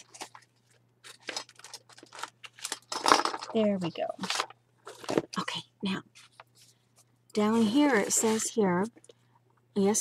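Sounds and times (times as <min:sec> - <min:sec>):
paper and packaging rustling: 0:00.0 - 0:09.0.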